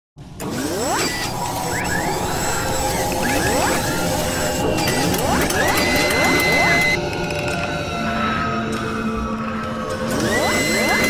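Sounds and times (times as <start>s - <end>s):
mechanical whirring and ratcheting: 0.4s - 7.7s, 10.1s - 11.0s
rising whirs: 0.4s - 7.8s, 8.7s - 11.0s.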